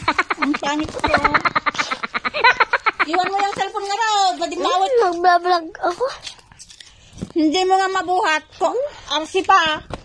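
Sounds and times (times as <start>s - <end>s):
young boy giggling: 0.0s - 3.6s.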